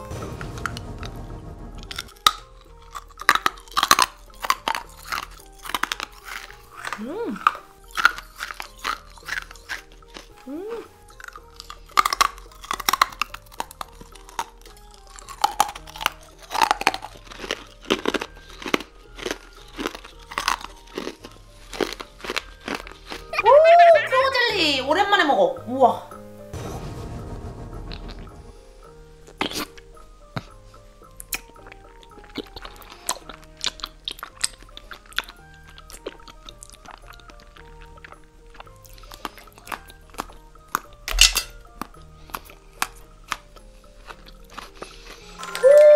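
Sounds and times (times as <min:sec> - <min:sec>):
hard candy crunching: 0:02.0 - 0:23.5, 0:31.2 - 0:45.8.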